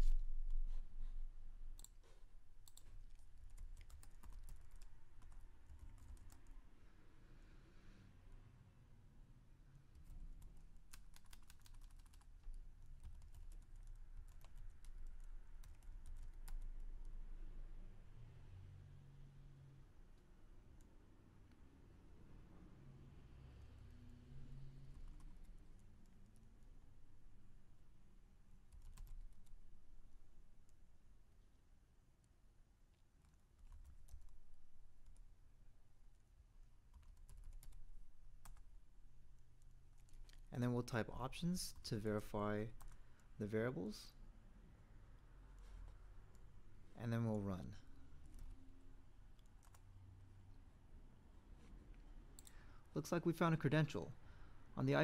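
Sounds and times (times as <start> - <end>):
faint keyboard typing: 0.0 - 6.6, 9.9 - 17.2, 24.8 - 27.9, 28.6 - 30.9, 32.2 - 41.0, 41.6 - 43.5, 45.6 - 49.9, 51.6 - 52.8
faint low hum: 0.0 - 55.0
computer keyboard typing: 1.8 - 2.0, 2.6 - 6.5, 10.0 - 16.7, 24.9 - 26.4, 28.7 - 29.6, 33.2 - 34.4, 36.9 - 38.7, 40.0 - 40.4, 42.7 - 43.0, 49.4 - 49.8.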